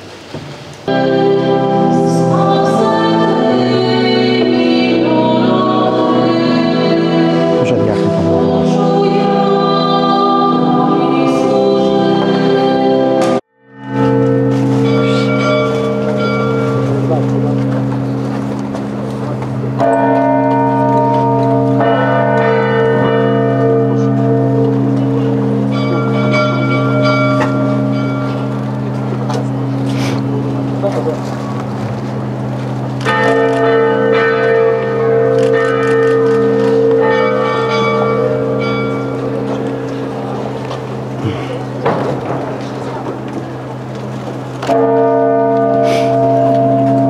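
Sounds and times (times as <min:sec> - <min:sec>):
large church bell tolling: 0:00.8 - 0:47.0.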